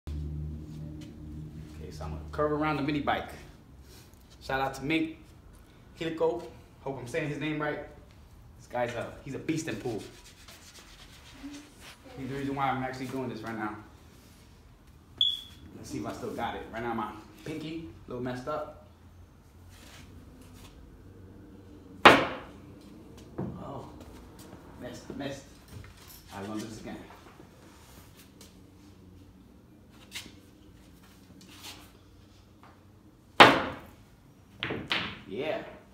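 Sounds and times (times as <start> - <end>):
faint rubbing and scuffing: 9.6 - 16.6, 19.6 - 20.8, 29.9 - 32.5
pool cue striking ball: 22.0 - 22.5, 33.4 - 35.3.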